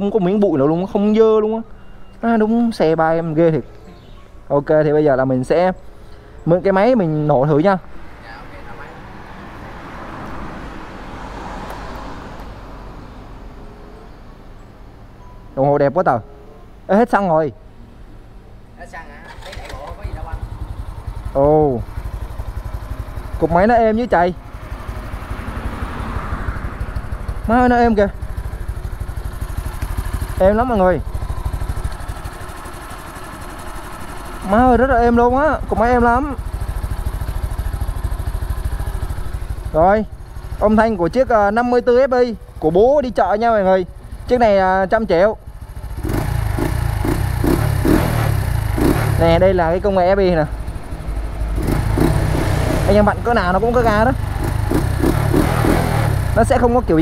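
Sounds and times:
vehicle engine: 6.6s - 13.6s, 17.8s - 57.0s.

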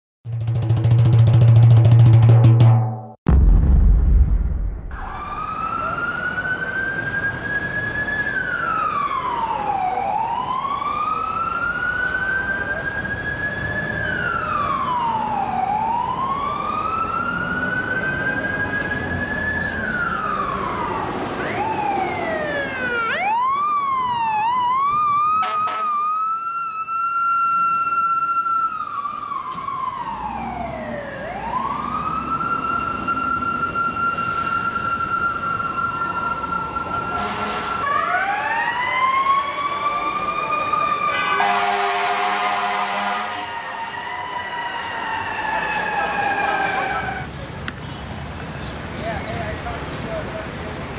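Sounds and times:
emergency siren wailing: 4.9s - 47.3s
city traffic noise: 4.9s - 50.9s.

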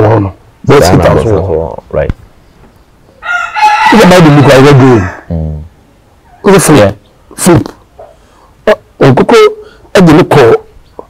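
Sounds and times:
man's voice: 0.0s - 2.1s
rooster crowing: 3.1s - 5.4s.

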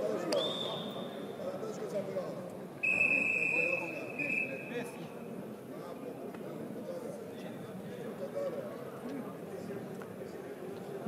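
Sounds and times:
arena crowd murmur: 0.0s - 11.0s
referee whistle blowing: 0.4s - 1.2s, 2.8s - 4.9s.

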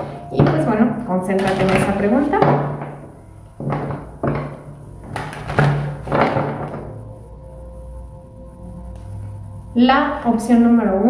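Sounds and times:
soft background music: 0.0s - 11.0s
cards handled and knocked on table: 3.6s - 6.9s.

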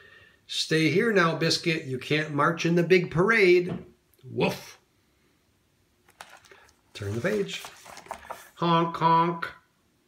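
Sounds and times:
paper page turning: 6.0s - 8.6s.

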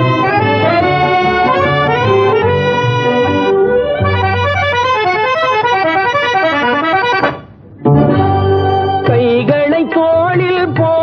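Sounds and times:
film song instrumental melody: 0.0s - 9.3s.

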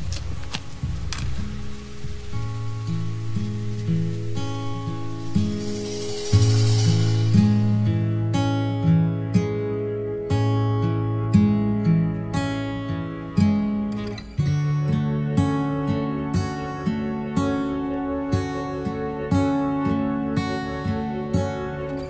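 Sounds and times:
plucked acoustic guitar: 2.3s - 17.6s.

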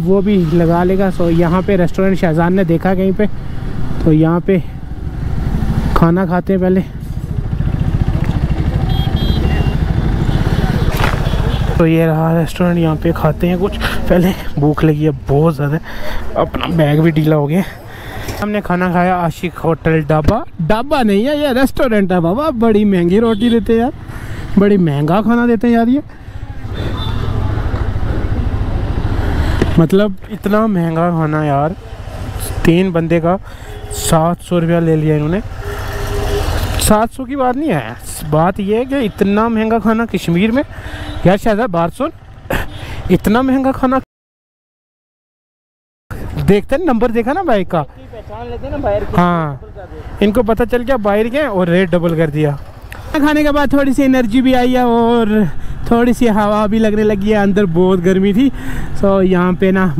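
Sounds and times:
motorcycle engine rumbling: 0.1s - 19.8s
motorcycle engine idling: 6.9s - 10.5s
person speaking: 11.6s - 35.6s.

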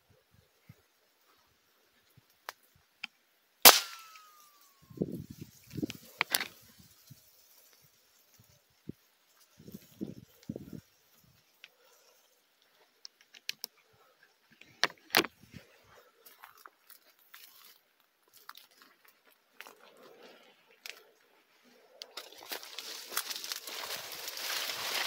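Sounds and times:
rifle shot: 3.6s - 4.4s
footsteps crunching through dry grass: 3.8s - 11.6s, 15.3s - 21.3s, 22.1s - 25.0s.

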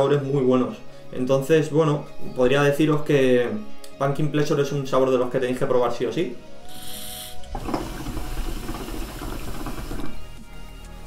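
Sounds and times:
hookah water bubbling: 6.7s - 10.1s.

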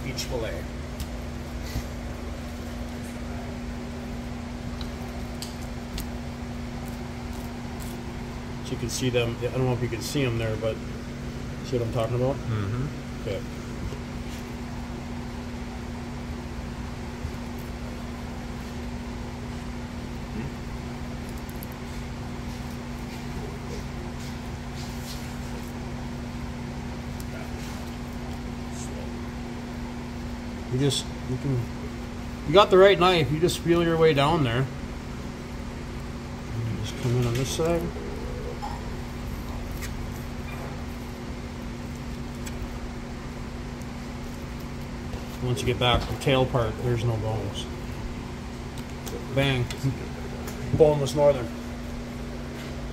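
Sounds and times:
machine hum: 0.0s - 52.9s.

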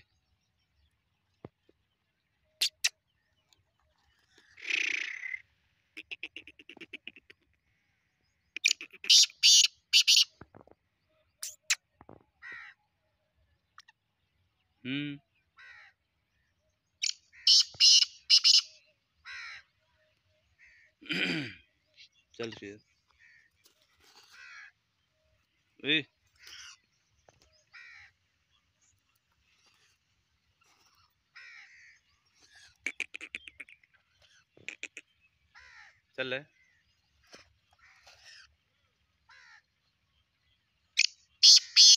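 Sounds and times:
bird harsh scratchy calls: 2.6s - 3.0s, 4.2s - 5.4s, 6.0s - 7.5s, 8.6s - 10.4s, 11.4s - 11.8s, 17.0s - 18.7s, 23.4s - 24.7s, 26.3s - 26.9s, 29.4s - 35.9s, 37.2s - 38.6s, 41.0s - 41.9s
francolin harsh calls: 4.6s - 5.4s, 8.6s - 10.3s, 17.0s - 19.6s, 41.0s - 41.9s.

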